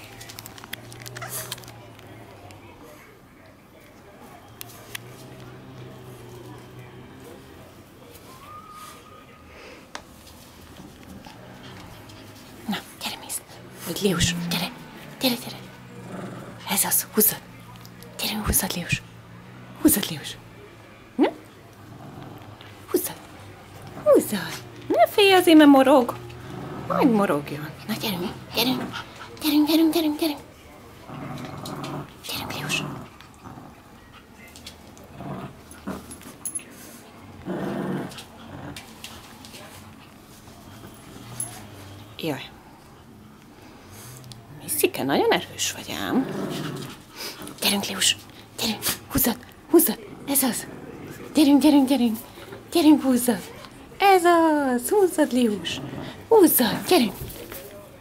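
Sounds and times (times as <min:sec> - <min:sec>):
dog growling: 0:00.0 - 0:02.8, 0:04.8 - 0:08.0, 0:10.6 - 0:54.0, 0:54.8 - 0:57.5.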